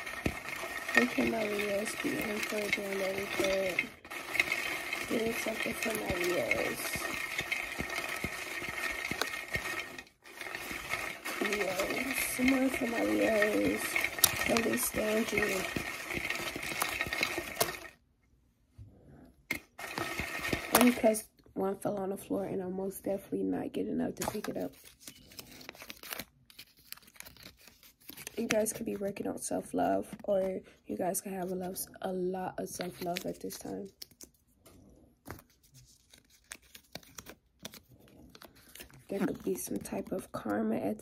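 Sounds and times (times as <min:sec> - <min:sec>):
cards being shuffled: 0:00.0 - 0:17.9, 0:19.5 - 0:21.1, 0:24.2 - 0:29.2, 0:32.7 - 0:34.4, 0:35.2 - 0:40.4
crisp paper crackles: 0:00.0 - 0:18.0, 0:24.2 - 0:29.2, 0:32.7 - 0:34.4, 0:35.2 - 0:40.5
paper slips rustling: 0:00.0 - 0:18.0, 0:19.5 - 0:21.2, 0:24.2 - 0:29.2, 0:32.7 - 0:34.3, 0:35.2 - 0:40.4.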